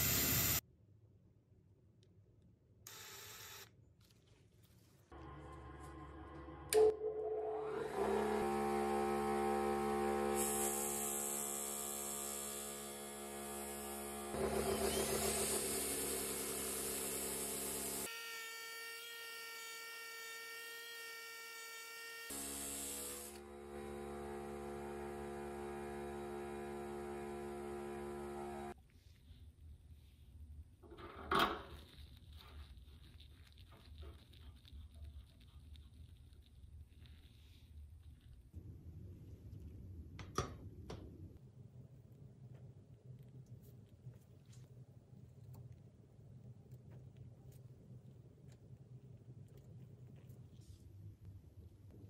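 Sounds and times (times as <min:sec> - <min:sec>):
bench grinder motor humming: 0:05.2 - 0:18.1, 0:22.3 - 0:28.8.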